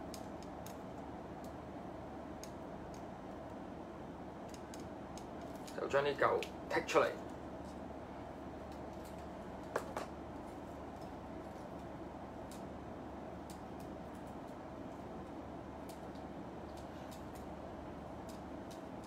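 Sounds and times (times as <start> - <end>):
low room noise: 0.0 - 19.0.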